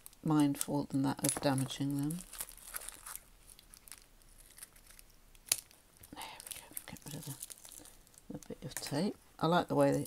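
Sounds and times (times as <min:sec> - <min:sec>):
plastic wrapping crinkling: 0:00.0 - 0:09.0.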